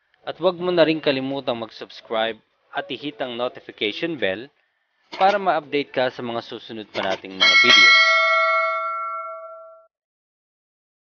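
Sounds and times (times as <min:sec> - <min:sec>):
bell chime ringing: 0:07.4 - 0:09.9.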